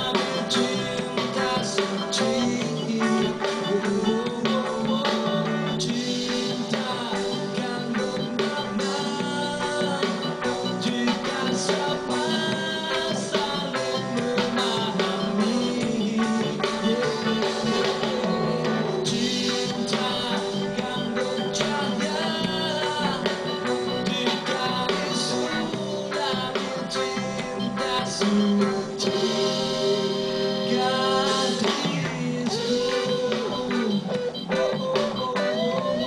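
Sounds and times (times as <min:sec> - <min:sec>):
electric guitar melody: 0:00.0 - 0:36.0
man singing: 0:00.0 - 0:36.0
reggae band playing: 0:00.0 - 0:36.0.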